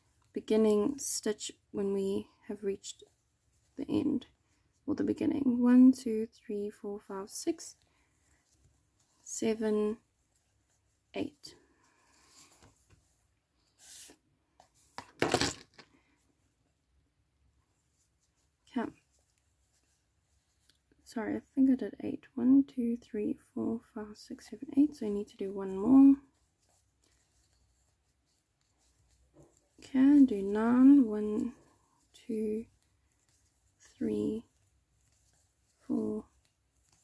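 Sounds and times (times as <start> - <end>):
yarn and crochet hook rustles: 0.0 - 16.2, 17.6 - 21.9, 24.0 - 37.0
woman speaking: 0.4 - 3.0, 3.8 - 4.3, 4.9 - 7.8, 9.2 - 10.0, 11.2 - 11.6, 18.7 - 19.0, 21.1 - 26.3, 29.8 - 32.7, 33.8 - 34.5, 35.9 - 36.3.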